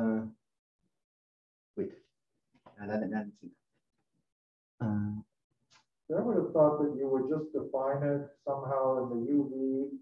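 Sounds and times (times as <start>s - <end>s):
man speaking: 0.0s - 0.3s, 4.8s - 5.2s, 6.1s - 10.0s
person saying uh: 4.8s - 5.2s.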